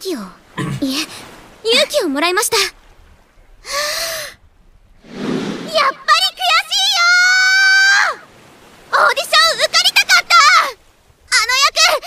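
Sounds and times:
girl speaking: 0.0s - 2.7s, 5.7s - 7.6s, 8.9s - 12.0s.

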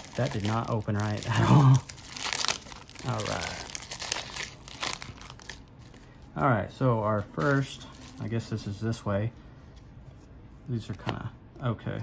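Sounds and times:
foil wrapper crinkling: 0.0s - 6.2s.

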